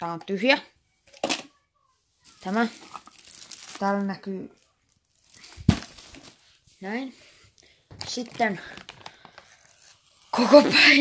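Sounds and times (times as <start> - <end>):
food packaging rustling in a bag: 2.2 - 6.6, 7.9 - 10.1.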